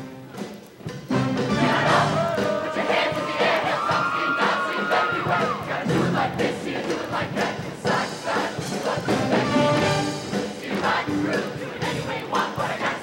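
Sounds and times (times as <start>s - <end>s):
choir singing with band: 1.1s - 13.0s.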